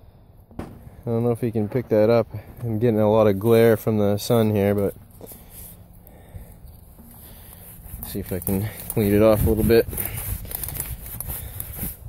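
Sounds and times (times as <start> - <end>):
fingers scraping dirt off metal: 6.6 - 12.0.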